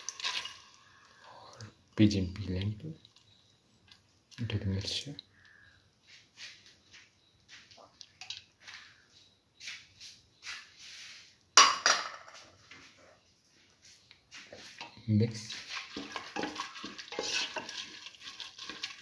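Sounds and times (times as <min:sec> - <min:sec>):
peas pattering into steel pan: 0:00.0 - 0:01.1, 0:15.4 - 0:19.0.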